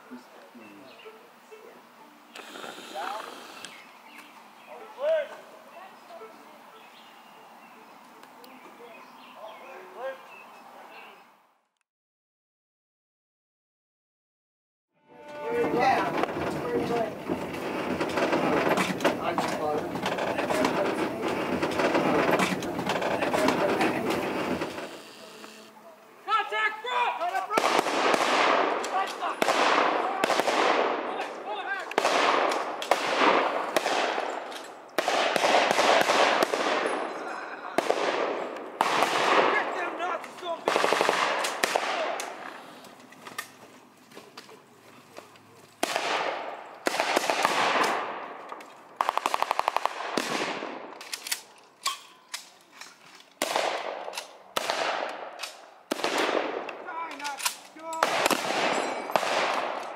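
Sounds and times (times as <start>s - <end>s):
low rumble of trolley car: 15.1s - 24.9s
rapid blank gunfire bursts: 16.1s - 24.9s, 27.5s - 31.1s, 31.9s - 37.0s, 37.8s - 39.8s, 40.6s - 42.4s, 45.8s - 48.3s, 49.0s - 50.8s, 54.6s - 56.7s, 58.0s - 59.9s.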